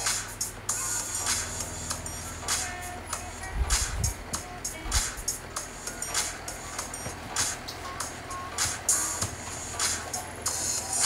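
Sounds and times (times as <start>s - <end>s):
music with steady beat and bass: 0.0s - 11.0s.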